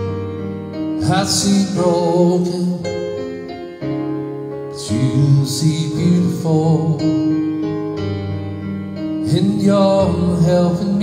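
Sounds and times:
sustained keyboard chords: 0:00.0 - 0:11.0
man singing worship song: 0:01.0 - 0:03.2, 0:04.7 - 0:07.4, 0:09.2 - 0:11.0.

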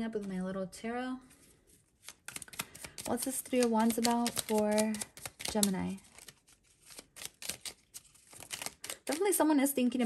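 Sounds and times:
cards shuffled by hand: 0:01.4 - 0:09.4.

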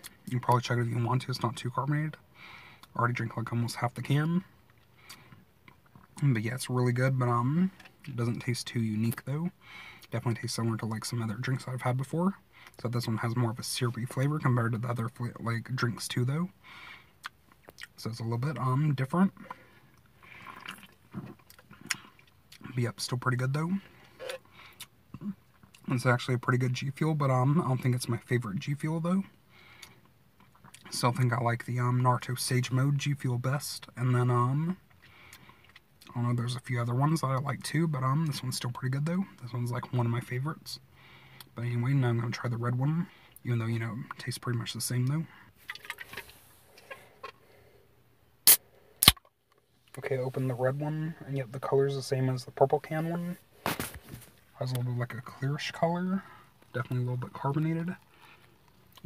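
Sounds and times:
slurp of liquid: 0:20.2 - 0:21.0
can tab popping open: 0:48.5 - 0:49.3.

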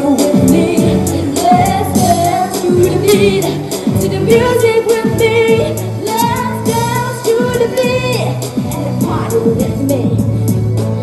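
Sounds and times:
girl singing into microphone: 0:00.0 - 0:10.4
pop backing track: 0:00.0 - 0:11.0.

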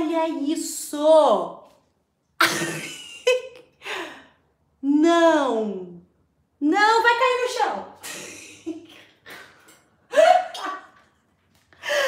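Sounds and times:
woman laughing and gasping: 0:08.0 - 0:10.8, 0:11.7 - 0:12.0.

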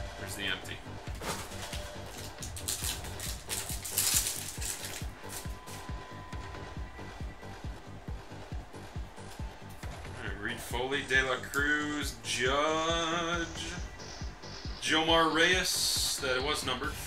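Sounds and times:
background music with beat: 0:00.0 - 0:17.0
handling wrapper and cards: 0:01.1 - 0:05.9
wrapper torn open: 0:01.2 - 0:05.8.

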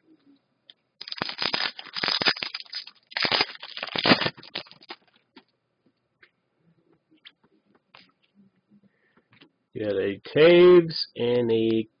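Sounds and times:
foil wrapper crinkling: 0:01.0 - 0:05.2.

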